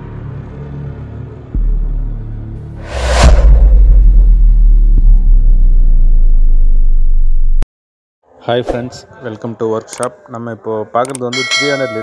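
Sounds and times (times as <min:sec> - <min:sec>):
deep bass rumble: 0:01.6 - 0:07.6.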